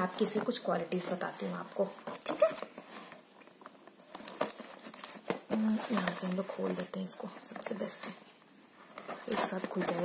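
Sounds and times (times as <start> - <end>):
plastic crinkling: 0.0 - 8.2, 8.8 - 10.0.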